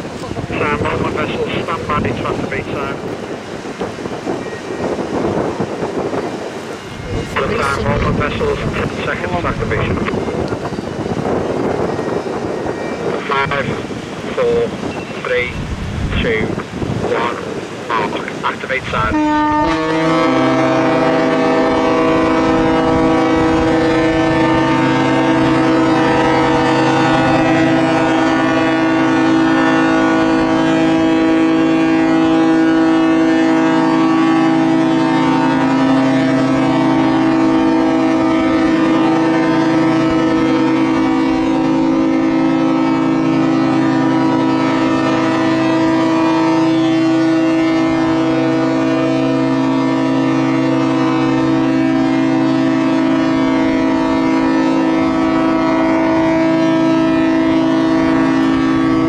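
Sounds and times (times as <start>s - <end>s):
ships' horns sounding together: 0.0s - 15.6s, 16.3s - 59.0s.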